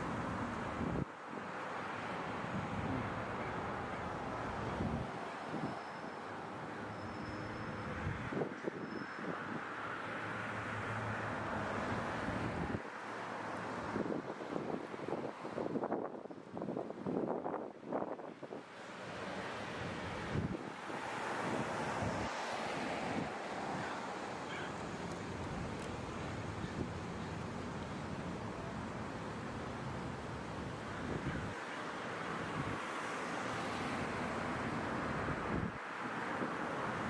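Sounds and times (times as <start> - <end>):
traffic running by: 0.0 - 37.0
wind buffeting microphone: 19.9 - 22.4.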